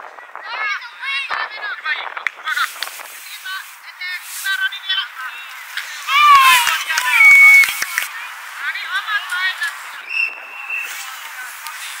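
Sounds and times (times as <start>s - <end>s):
young children shouting: 6.1s - 7.8s.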